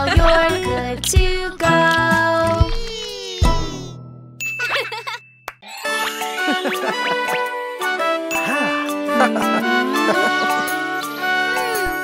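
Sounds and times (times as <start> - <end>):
children's music with tinkling chimes: 0.2 - 12.0
chiming transition sound effect: 9.1 - 12.0.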